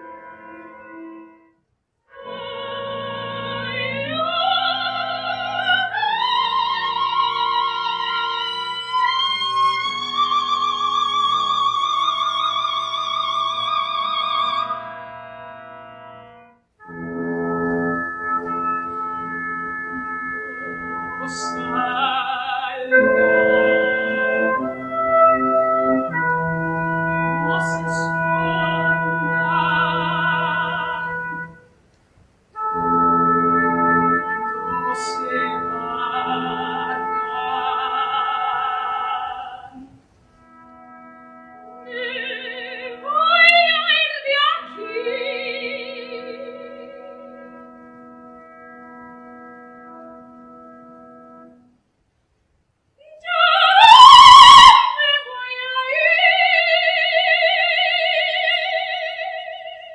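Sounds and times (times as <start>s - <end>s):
instrumental accompaniment: 0.0s - 59.9s
soprano singing operatic lines: 2.1s - 15.7s, 16.8s - 31.8s, 32.6s - 40.0s, 40.8s - 49.3s, 53.0s - 59.9s.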